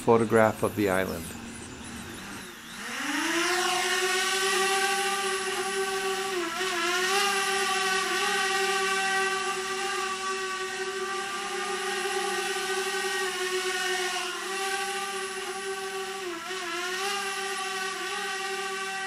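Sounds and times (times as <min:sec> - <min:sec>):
drone propellers whining: 0:00.0 - 0:19.0.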